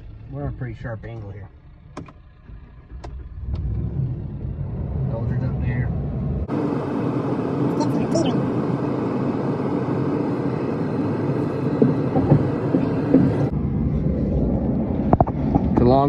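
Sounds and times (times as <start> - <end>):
vehicle engine rumble: 0.0 - 16.0.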